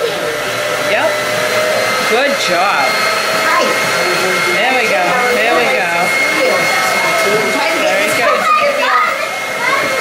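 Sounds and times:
electric motor whirring: 0.0 - 10.0.

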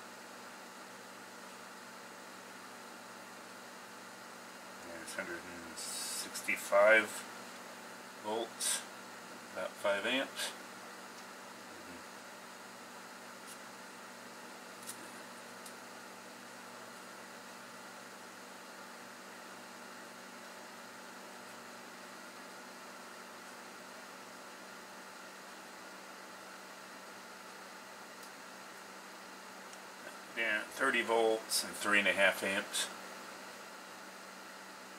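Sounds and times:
tesla coil hiss and hum: 0.0 - 34.9.

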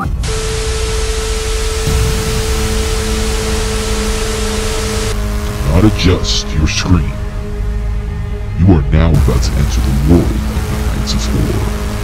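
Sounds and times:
tv static hiss: 0.0 - 7.4, 9.2 - 12.0
steady tone: 0.0 - 12.0
person speaking: 5.6 - 7.2.

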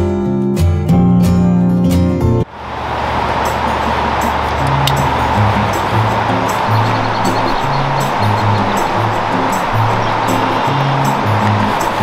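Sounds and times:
river water flowing: 2.5 - 12.0.

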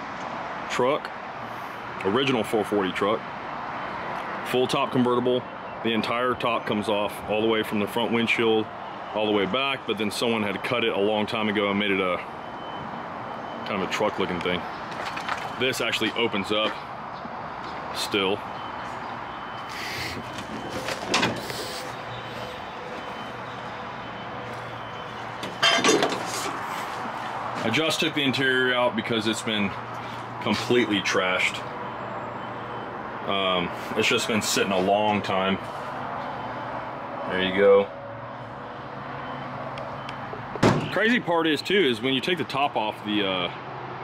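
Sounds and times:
truck door metallic clatter: 20.2 - 21.5, 25.3 - 26.6, 40.3 - 41.0.

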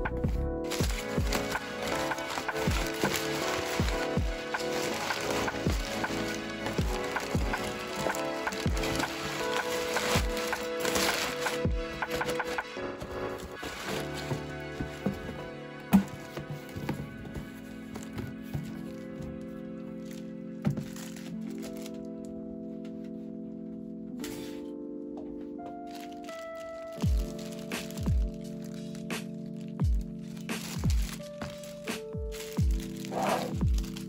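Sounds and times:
soft background music: 0.0 - 34.0
packing paper rustling: 0.6 - 23.2, 24.2 - 24.8, 25.5 - 34.0.

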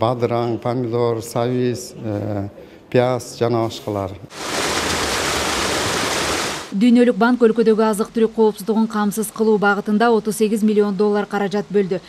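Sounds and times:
water rushing in canal: 4.3 - 6.8.

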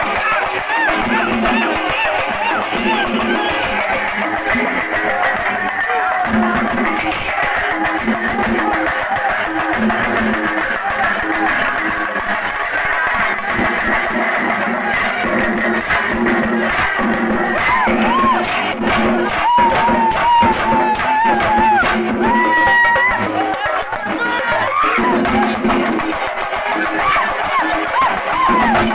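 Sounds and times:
drums played in fast rhythm: 0.0 - 28.9.

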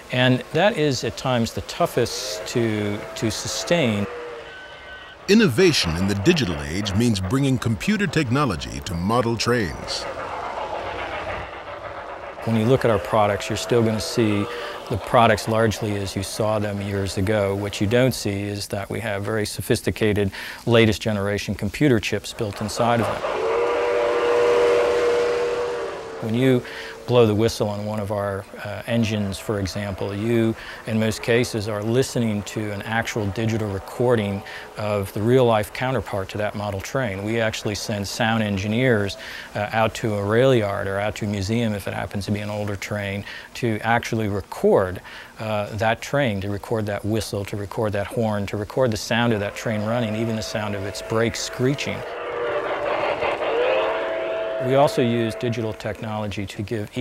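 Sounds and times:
model train whistle: 0.0 - 18.2, 22.5 - 42.8, 48.8 - 57.0.

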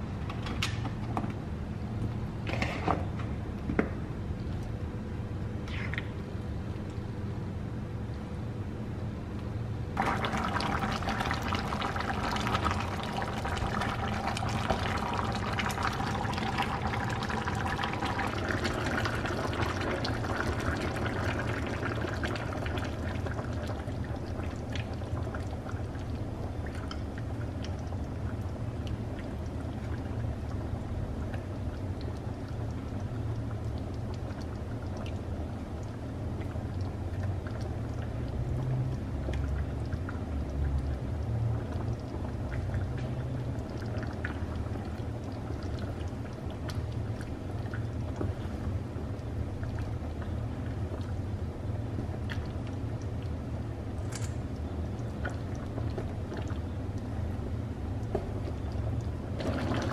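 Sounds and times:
curry bubbling in a pan: 10.0 - 59.9.

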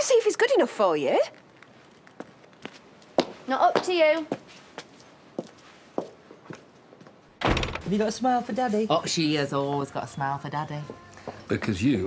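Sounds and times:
faint footsteps: 1.4 - 7.4
door shutting with thunk: 7.4 - 7.9.

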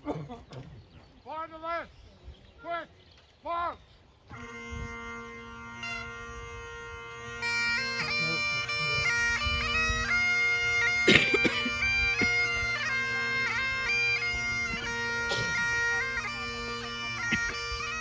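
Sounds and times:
bagpipes playing: 4.3 - 18.0.

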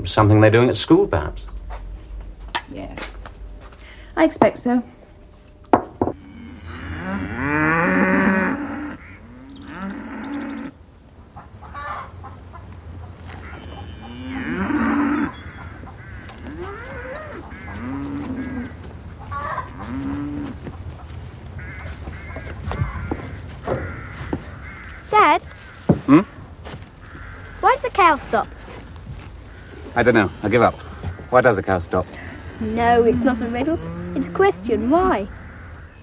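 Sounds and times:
cattle mooing: 6.1 - 10.8, 13.3 - 25.0, 29.4 - 35.8.

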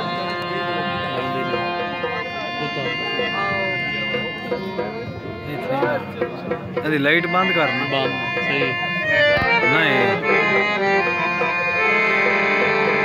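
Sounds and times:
harmonium chords: 0.0 - 13.0
voices talking: 0.0 - 13.0.

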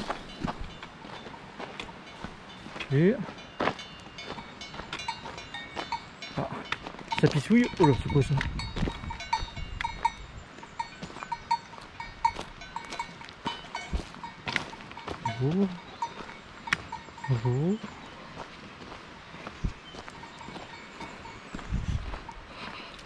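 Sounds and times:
cattle bells clinking: 0.0 - 23.0.

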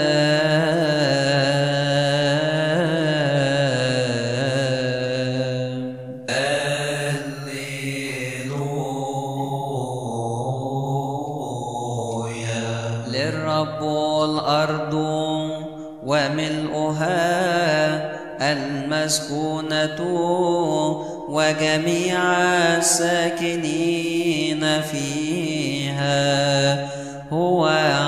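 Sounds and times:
person chanting wordless melody: 0.0 - 28.0.

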